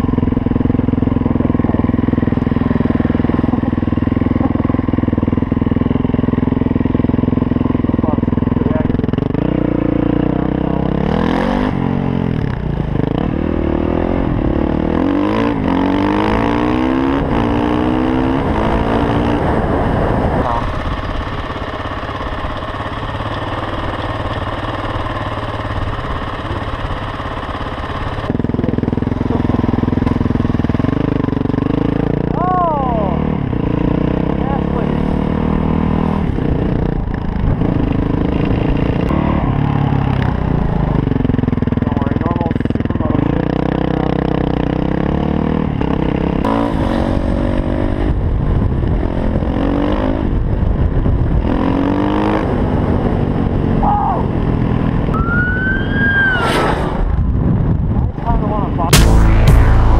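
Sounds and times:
motorcycle engine revving: 0.0 - 50.6, 58.9 - 59.9.

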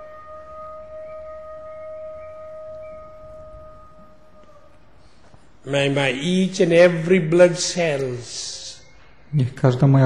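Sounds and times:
held musical tone: 0.0 - 9.5.

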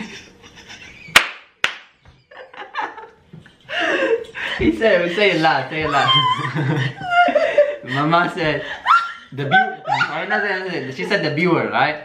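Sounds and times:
laughter: 0.0 - 1.2, 2.0 - 4.6, 5.2 - 10.7
hand claps: 1.1 - 2.2.

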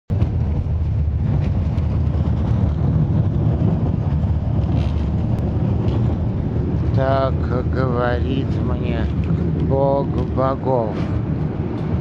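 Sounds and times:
vehicle rumble inside cabin: 0.1 - 12.0.

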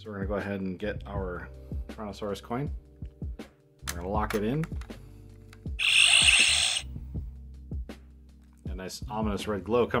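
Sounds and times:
music with slow steady beat: 0.2 - 9.6.

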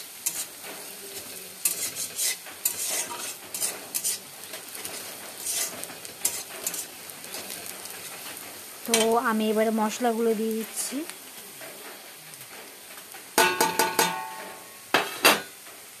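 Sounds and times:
onions sizzling in oil: 0.0 - 16.0
spatula scraping a pan: 0.1 - 9.2.

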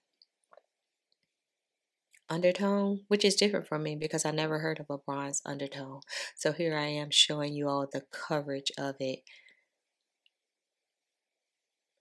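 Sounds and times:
woman's voiceover: 2.3 - 9.3.

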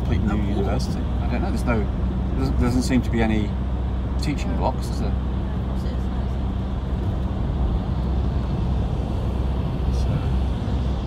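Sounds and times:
road and engine rumble inside vehicle: 0.0 - 11.0.

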